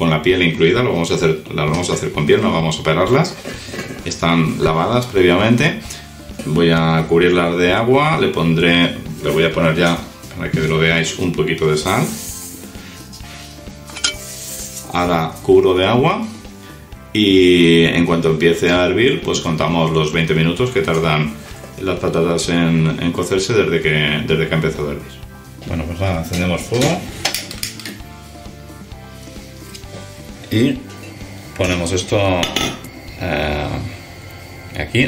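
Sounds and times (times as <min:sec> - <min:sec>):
soft background music: 0:00.0 - 0:35.0.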